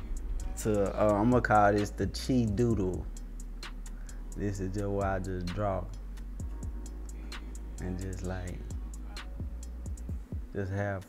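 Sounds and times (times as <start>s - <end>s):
hip-hop beat: 0.0s - 11.0s.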